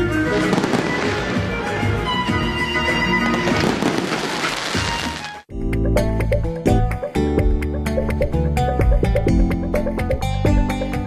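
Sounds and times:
music playing: 0.0 - 11.0
fireworks crackling and popping: 0.2 - 2.0, 3.2 - 5.5.

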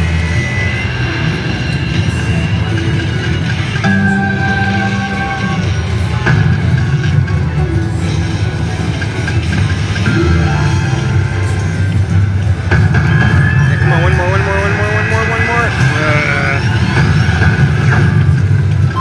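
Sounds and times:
low hum: 0.0 - 19.0
slot machine game sounds: 0.0 - 19.0.

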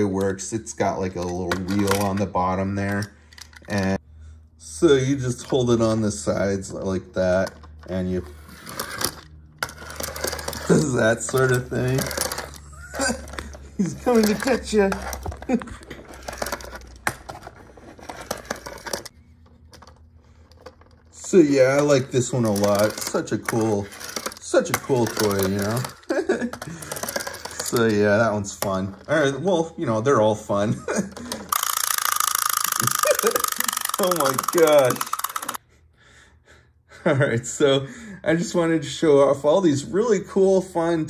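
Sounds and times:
plastic toy rolling on wooden table: 7.4 - 19.1, 19.8 - 29.2, 31.2 - 35.6.

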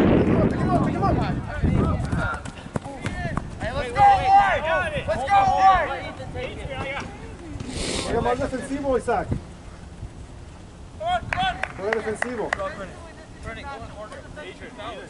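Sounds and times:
men shouting: 3.6 - 6.2.

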